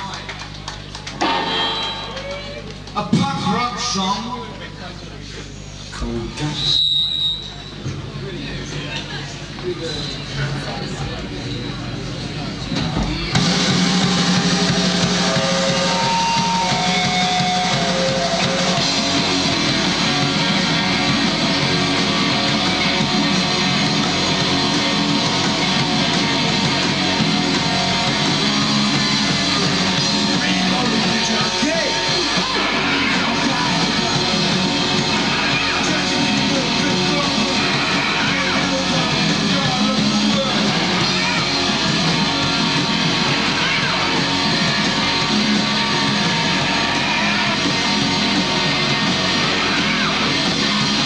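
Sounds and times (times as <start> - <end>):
room noise: 0.0 - 51.0
drums crashing: 0.8 - 3.9, 12.7 - 51.0
drum hits: 1.2 - 3.6
held amplified tone: 1.2 - 3.6
live rock band playing: 1.2 - 3.6, 13.3 - 51.0
electric guitar: 13.3 - 51.0.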